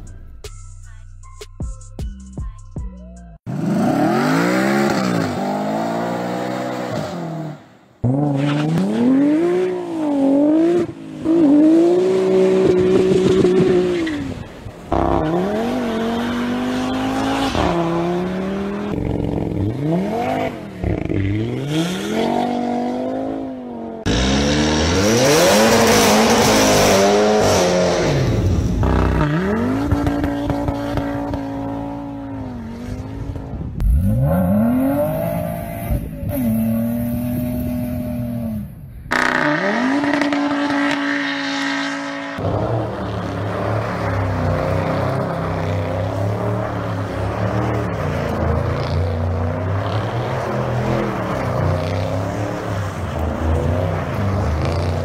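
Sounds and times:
car engines revving: 0:03.4 - 0:55.0.

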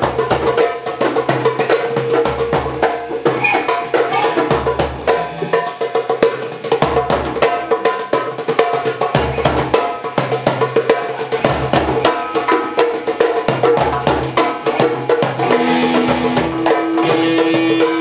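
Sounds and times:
hand drums playing: 0:00.0 - 0:18.0.

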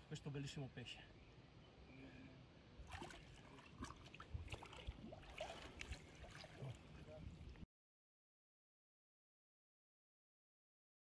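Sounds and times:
water sloshing and splashing: 0:02.8 - 0:07.6.

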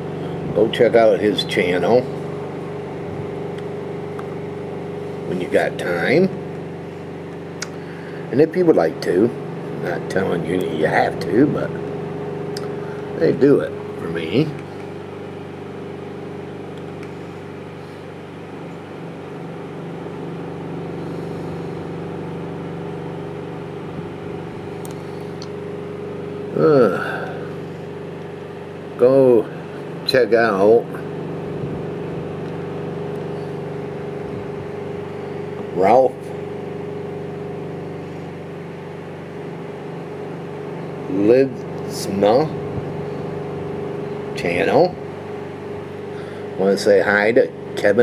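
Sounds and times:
steady machine hum: 0:00.0 - 0:48.0.

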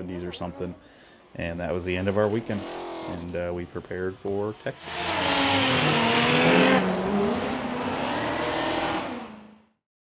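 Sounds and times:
car engine under throttle: 0:04.6 - 0:09.7.

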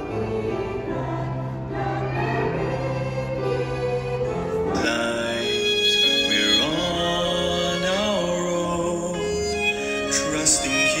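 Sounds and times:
group singing worship song: 0:00.0 - 0:05.8.

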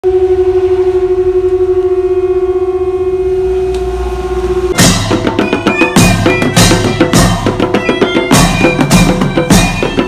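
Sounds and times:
conch shell blown: 0:00.0 - 0:10.0.

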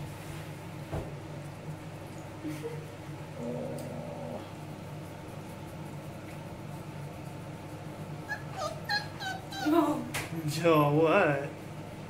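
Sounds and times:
faint low hum: 0:00.9 - 0:12.0
puppy whimpering: 0:08.2 - 0:10.1.

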